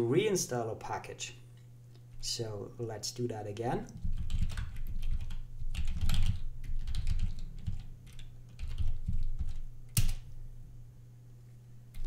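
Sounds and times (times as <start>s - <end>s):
computer keyboard typing: 4.0s - 10.3s.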